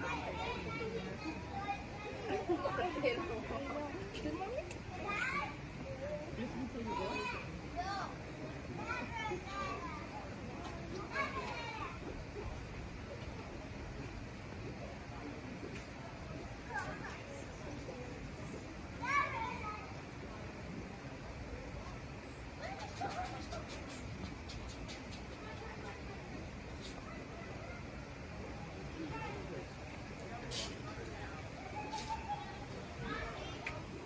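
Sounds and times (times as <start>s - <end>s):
children talking and calling out: 0.0s - 34.0s.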